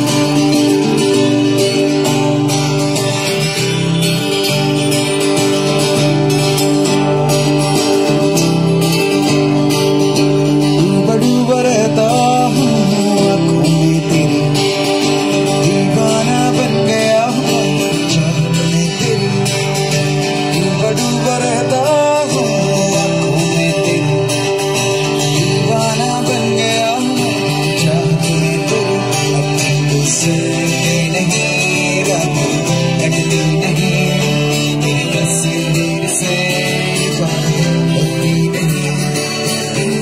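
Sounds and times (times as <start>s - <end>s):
acoustic guitars strummed: 0.0s - 40.0s
person singing into microphone: 10.6s - 40.0s.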